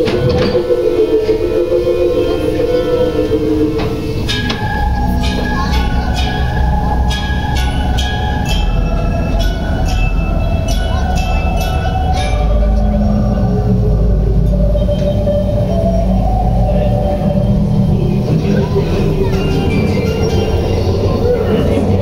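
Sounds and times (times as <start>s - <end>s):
background ride music: 0.0s - 22.0s
ride train rumbling: 0.0s - 22.0s.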